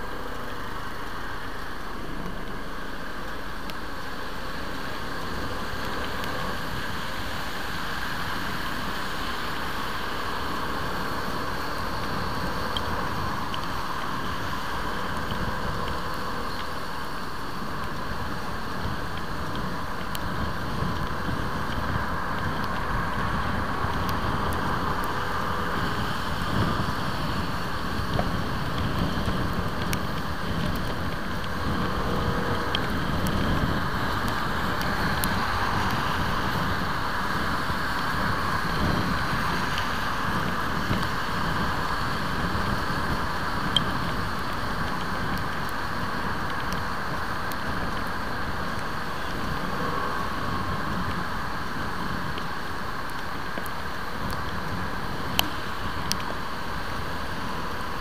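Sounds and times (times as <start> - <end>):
tyre noise on wet road: 0.0 - 58.0
wind rush on microphone: 0.0 - 58.0.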